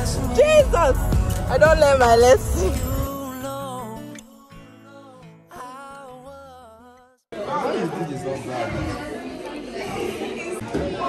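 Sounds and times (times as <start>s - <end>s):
background music: 0.0s - 6.7s
students talking: 7.4s - 11.0s.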